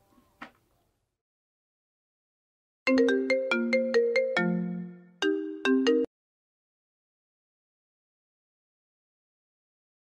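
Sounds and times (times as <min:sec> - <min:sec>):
electronic ringtone melody: 0:02.9 - 0:06.1.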